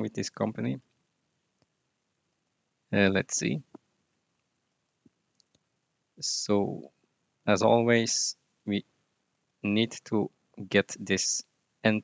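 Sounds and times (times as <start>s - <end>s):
faint computer mouse clicks: 4.4s - 5.7s.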